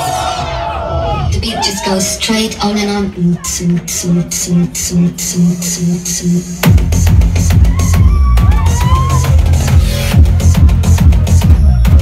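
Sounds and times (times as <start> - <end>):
bass line: 2.2 - 12.0
heavy kick drum: 6.6 - 12.0.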